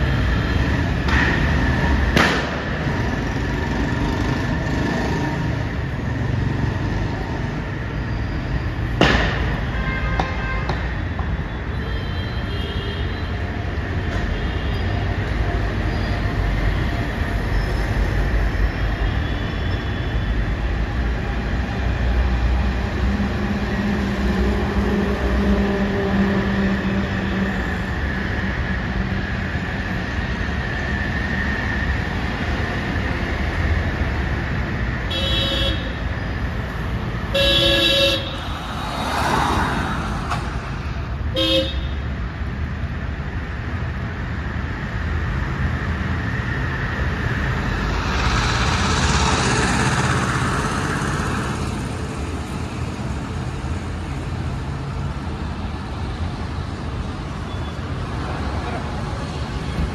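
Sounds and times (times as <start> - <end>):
vehicle horns tooting: 35.1 - 36.0, 37.3 - 38.4, 41.3 - 42.0.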